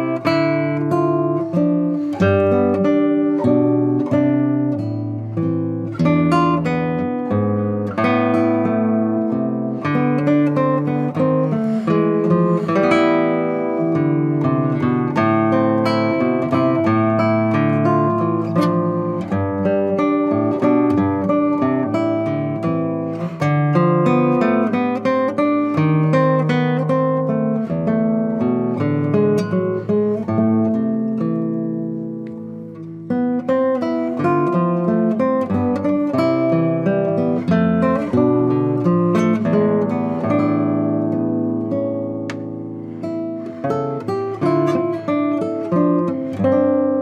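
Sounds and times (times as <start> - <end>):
fingerstyle classical guitar: 0.0 - 47.0.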